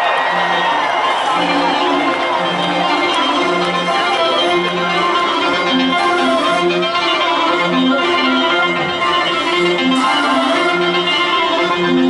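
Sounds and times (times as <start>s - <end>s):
rock band with orchestra live: 0.2s - 12.0s.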